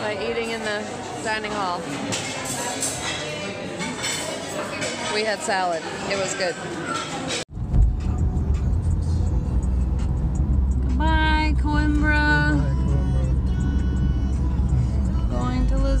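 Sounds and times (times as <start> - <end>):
car cabin road and engine rumble: 7.6 - 16.0
held pitched tones: 9.6 - 16.0.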